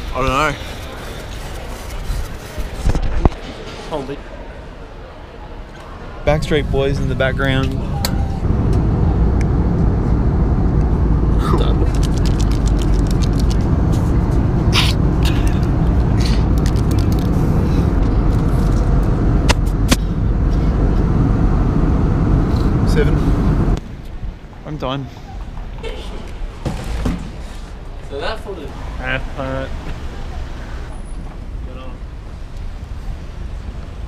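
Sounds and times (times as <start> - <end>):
airliner cabin engine rumble: 6.3 - 23.8.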